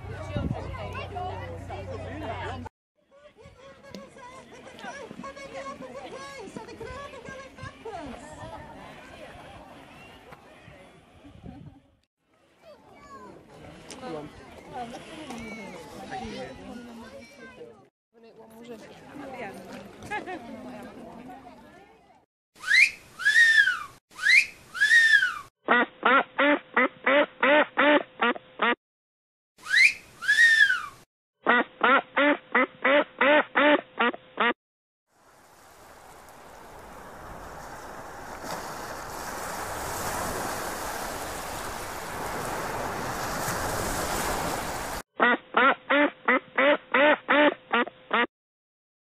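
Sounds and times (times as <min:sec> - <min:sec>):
high squeaky calls: 0:22.6 - 0:25.5, 0:29.6 - 0:31.0
duck quacking: 0:25.7 - 0:28.8, 0:31.4 - 0:34.6, 0:45.2 - 0:48.3.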